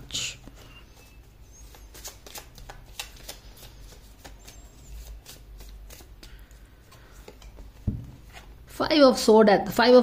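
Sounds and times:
cards being shuffled: 0:00.4 - 0:08.5.

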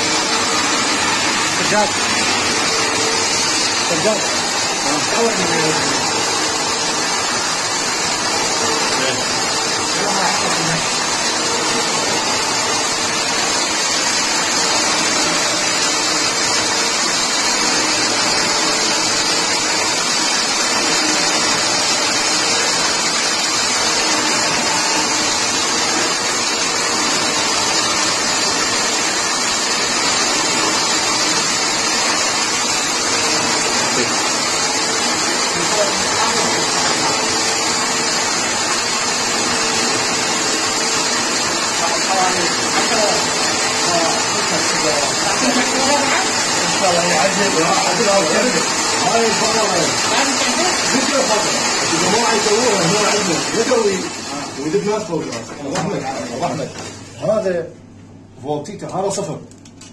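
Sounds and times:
coil winding machine whirring: 0:00.0 - 0:59.9.

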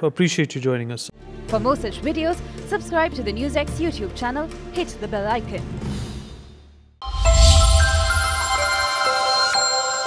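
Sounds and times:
bright bell-like synth chord: 0:07.0 - 0:10.0.

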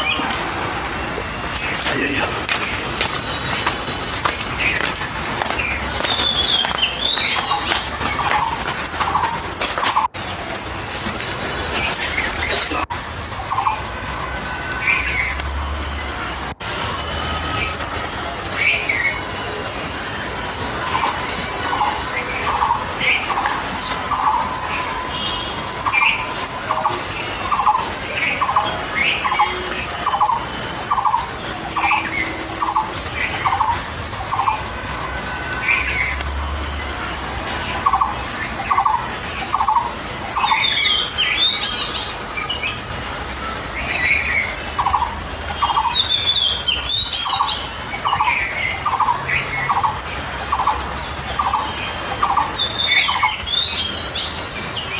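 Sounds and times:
high bird twittering: 0:01.4 - 0:10.1, 0:20.9 - 0:34.8, 0:37.8 - 0:42.8, 0:43.8 - 0:54.9.

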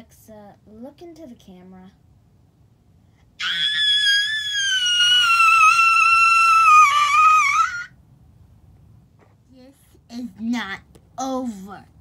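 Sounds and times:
girl screaming: 0:03.4 - 0:07.9.

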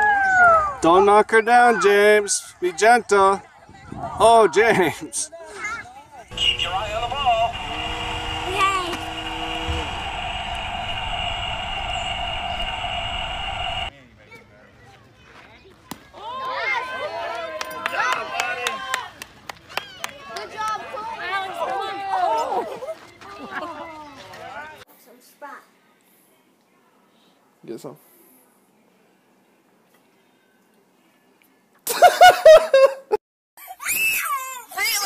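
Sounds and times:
adults and children shouting: 0:00.0 - 0:00.8, 0:16.1 - 0:24.8
faint voices: 0:05.5 - 0:16.3
low hum: 0:06.3 - 0:13.9.

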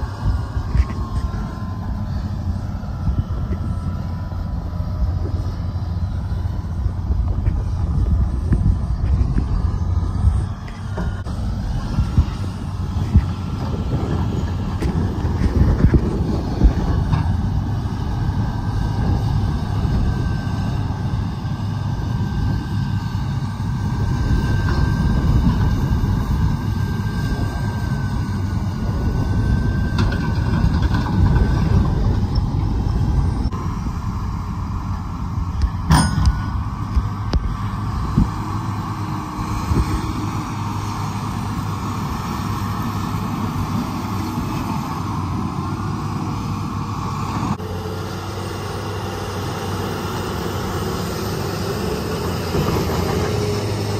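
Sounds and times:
heavy diesel engines under load: 0:00.0 - 0:53.9.

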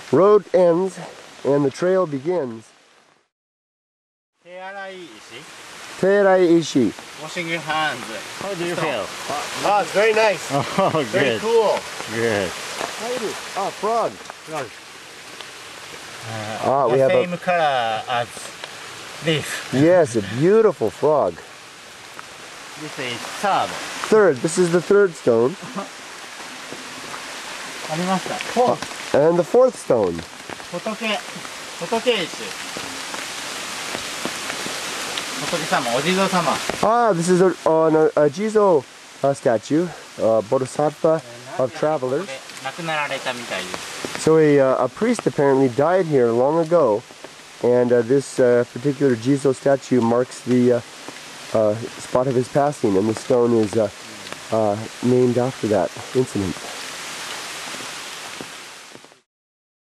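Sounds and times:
mountain stream running: 0:00.0 - 0:03.2, 0:04.4 - 0:59.2.

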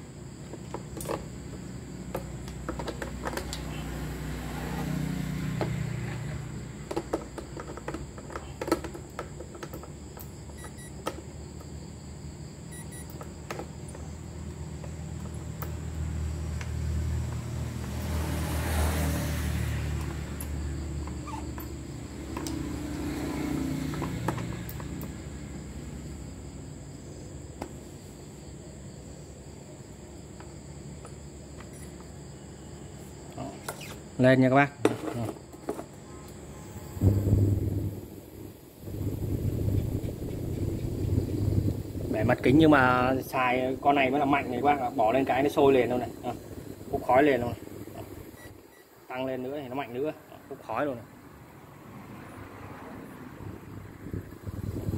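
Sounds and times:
handling clicks and knocks: 0:00.4 - 0:03.7, 0:06.8 - 0:11.3
low steady rumble: 0:37.0 - 0:44.6.

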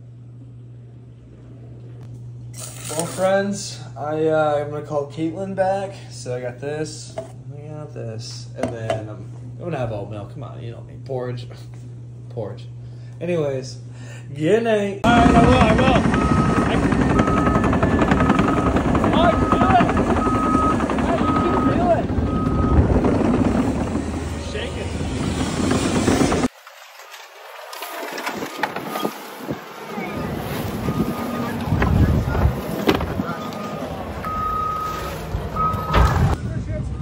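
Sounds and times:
heavy machine engine running: 0:15.0 - 0:26.5, 0:27.3 - 0:36.4
backup alarm beeping: 0:15.1 - 0:23.4, 0:30.8 - 0:36.3.

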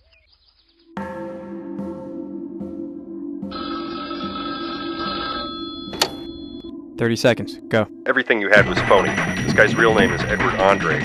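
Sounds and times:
low steady music drone: 0:00.9 - 0:11.0
telephone ringing: 0:03.5 - 0:06.7.

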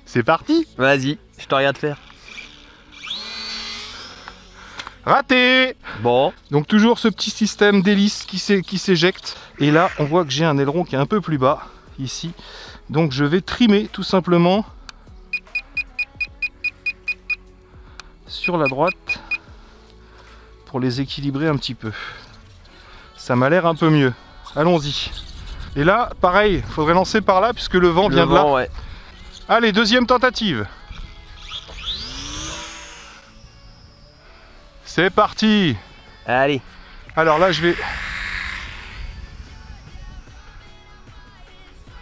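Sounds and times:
model plane motor whine: 0:02.0 - 0:05.0, 0:30.8 - 0:41.8
short high electronic beeps: 0:15.3 - 0:17.4, 0:18.4 - 0:19.4.

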